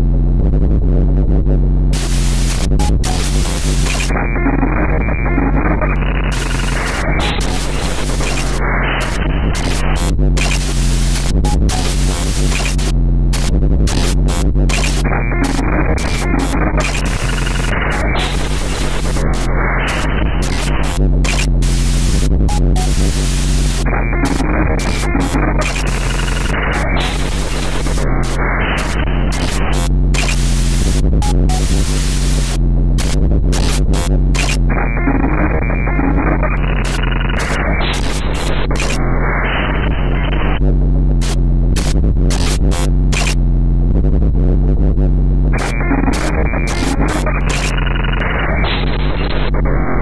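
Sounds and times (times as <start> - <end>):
steady deep hum: 0.0 - 50.0
harsh crackling static: 1.8 - 44.6, 45.2 - 50.0.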